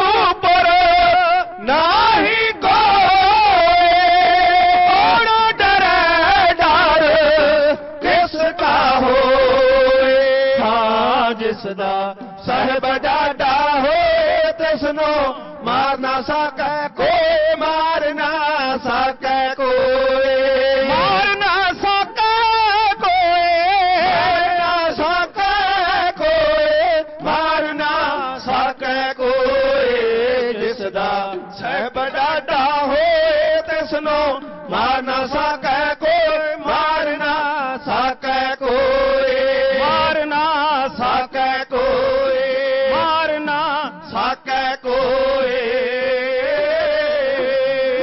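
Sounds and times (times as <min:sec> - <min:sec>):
person chanting devotional verse: 0:00.0 - 0:48.0.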